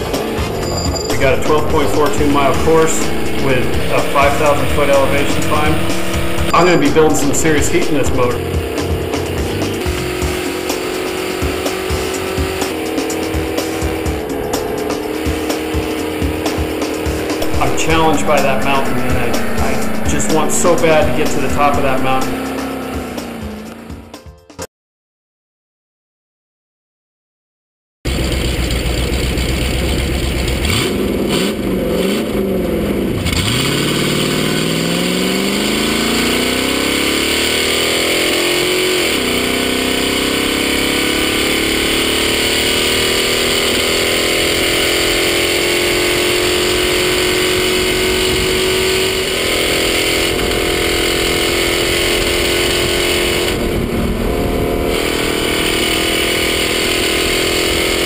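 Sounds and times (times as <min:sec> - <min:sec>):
race car engine at full throttle: 0:00.0 - 0:24.6, 0:28.1 - 0:58.0.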